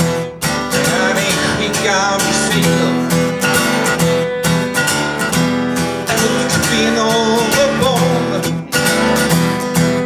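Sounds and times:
acoustic guitar strumming: 0:00.0 - 0:10.0
man singing into microphone: 0:00.7 - 0:03.4, 0:06.0 - 0:08.8.

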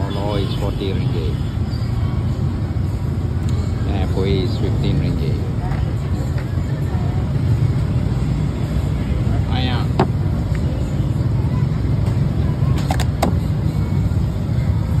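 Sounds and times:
low rumble of road traffic: 0:00.0 - 0:15.0.

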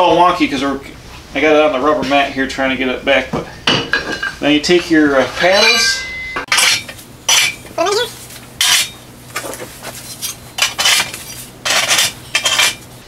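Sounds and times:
steel target paddles clanking: 0:03.4 - 0:07.7.

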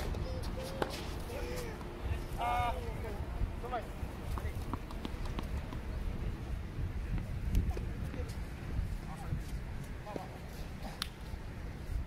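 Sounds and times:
wind buffeting microphone: 0:00.0 - 0:10.2.

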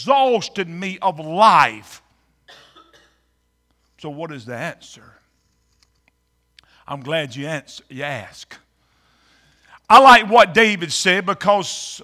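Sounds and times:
person coughing: 0:02.5 - 0:03.3.

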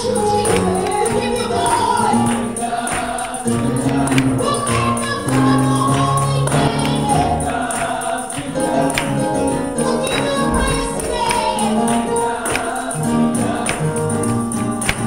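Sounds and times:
choir singing in harmony: 0:00.0 - 0:15.0
tambourine rhythm: 0:00.0 - 0:15.0.

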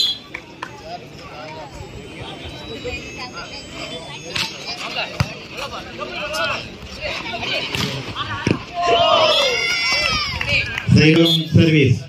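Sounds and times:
people shouting and cheering: 0:00.0 - 0:11.7.

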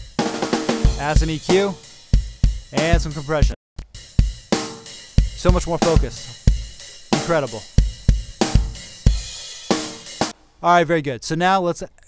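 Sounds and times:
snare drum hits: 0:07.2 - 0:07.6
kick drum hits: 0:07.8 - 0:08.8.

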